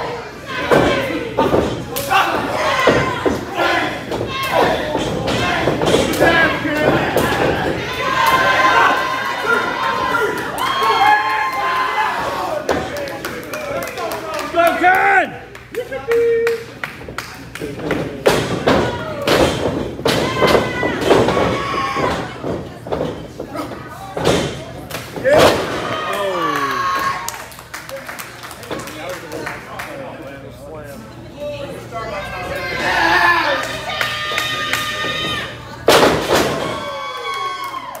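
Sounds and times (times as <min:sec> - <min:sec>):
spectators shouting: 0:00.0 - 0:12.8
crowd shouting and cheering: 0:00.0 - 0:16.8, 0:18.5 - 0:22.9, 0:25.1 - 0:27.6, 0:32.1 - 0:38.0.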